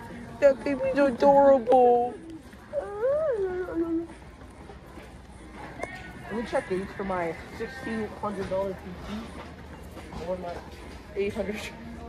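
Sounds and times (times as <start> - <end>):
store background noise: 0.0 - 12.0.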